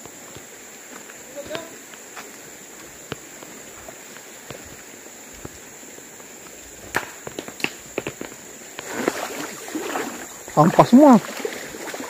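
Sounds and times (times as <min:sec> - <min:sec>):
footsteps on loose stones: 0:00.0 - 0:09.6
rocks clacking together: 0:06.8 - 0:09.2.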